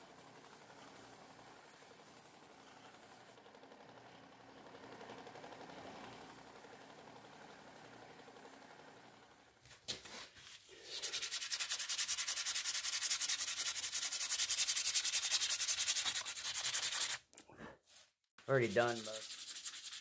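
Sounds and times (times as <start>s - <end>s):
sandpaper rubbing on knife: 10.4s - 17.2s, 18.4s - 20.0s.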